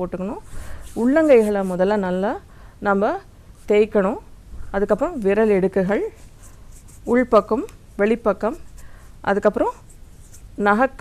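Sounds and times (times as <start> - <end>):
woman speaking: 0.0 - 6.2, 7.0 - 9.8, 10.6 - 11.0.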